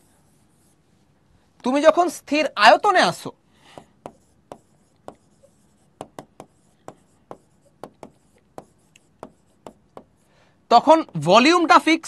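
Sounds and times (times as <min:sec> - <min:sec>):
pen tapping on glass: 0:03.8 - 0:05.3, 0:06.0 - 0:10.1.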